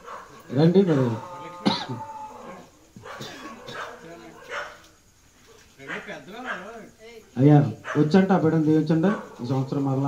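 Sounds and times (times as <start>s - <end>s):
people's voices: 0.3s - 10.0s.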